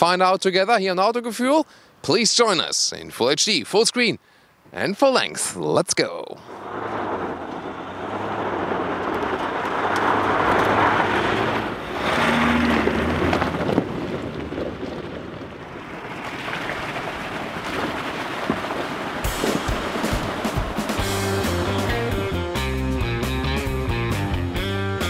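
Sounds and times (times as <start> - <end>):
truck driving through water: 6.5 - 22.3
tyres on loose gravel: 6.5 - 22.3
electric guitar rock music: 19.4 - 25.0.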